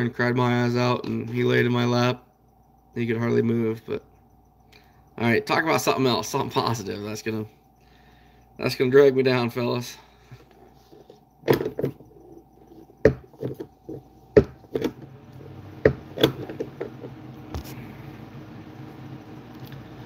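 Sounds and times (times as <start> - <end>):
low steady hum: 0.0 - 20.0
phone being handled: 10.3 - 15.1, 15.8 - 17.8.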